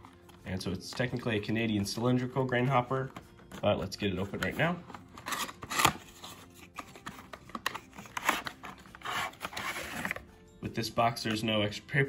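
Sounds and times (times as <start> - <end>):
cardboard and plastic scraping: 3.0 - 10.3.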